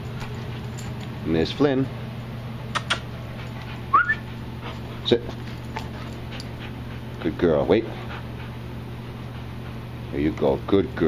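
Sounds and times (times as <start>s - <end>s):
steady low hum: 0.0s - 11.0s
dog whining: 2.7s - 4.4s.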